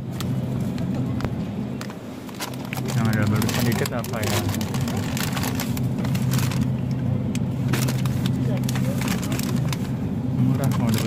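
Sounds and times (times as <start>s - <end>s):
steady low hum: 0.0s - 11.0s
plastic bags crinkling: 2.2s - 6.8s, 7.6s - 9.9s, 10.6s - 11.0s.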